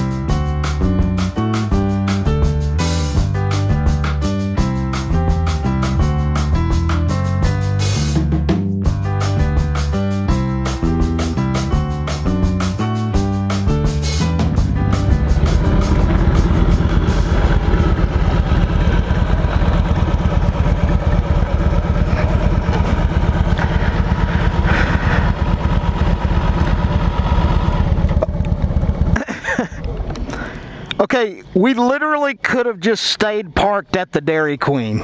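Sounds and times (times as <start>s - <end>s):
motorcycle engine running: 8.9s - 30.3s.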